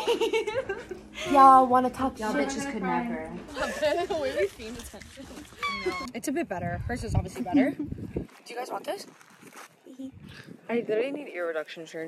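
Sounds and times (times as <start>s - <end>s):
woman squealing: 5.5s - 6.2s.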